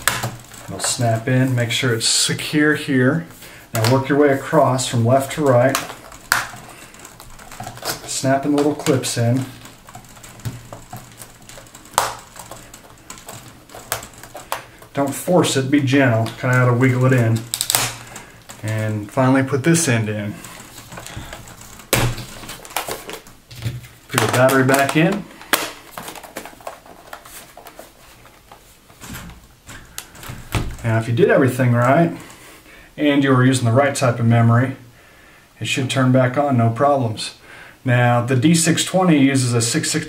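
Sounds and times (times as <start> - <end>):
plastic clips snapping into place: 0.0 - 0.6, 5.6 - 9.0, 17.4 - 18.8, 20.6 - 27.2
laptop handling noise: 0.0 - 1.8, 3.3 - 30.9.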